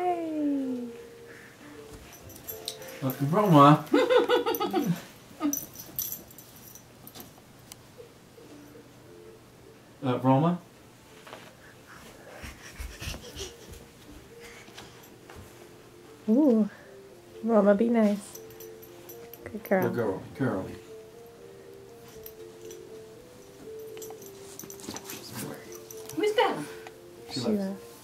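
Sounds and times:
dog breathing noisily: 0:11.5 - 0:15.3.

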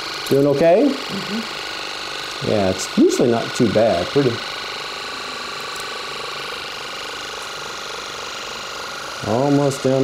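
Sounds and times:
ear irrigation pump buzzing: 0:00.0 - 0:10.0.

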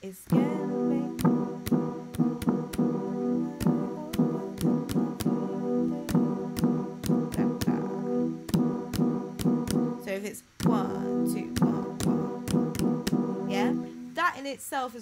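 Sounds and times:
brassy synth chords: 0:00.3 - 0:14.2.

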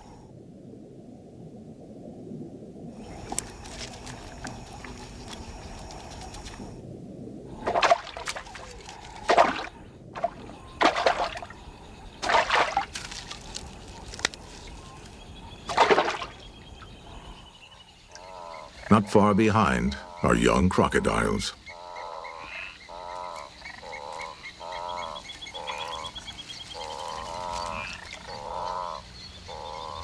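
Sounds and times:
fish splashing in water: 0:07.6 - 0:11.5, 0:12.2 - 0:14.2, 0:15.7 - 0:16.5.

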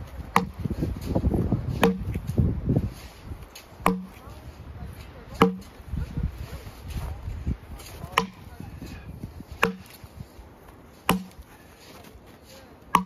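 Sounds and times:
axe chopping log: 0:00.3 - 0:00.8, 0:01.7 - 0:02.3, 0:03.8 - 0:04.2, 0:05.4 - 0:05.8, 0:08.0 - 0:08.5, 0:09.5 - 0:10.0, 0:11.0 - 0:11.4.

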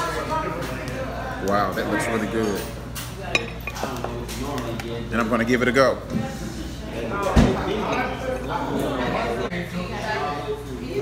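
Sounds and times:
tableware clinking: 0:01.8 - 0:04.6, 0:07.2 - 0:09.2.

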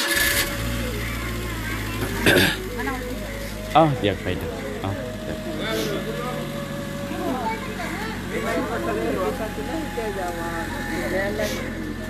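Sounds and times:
vehicle engine idling: 0:00.0 - 0:12.0
people talking over one another: 0:00.7 - 0:12.0.

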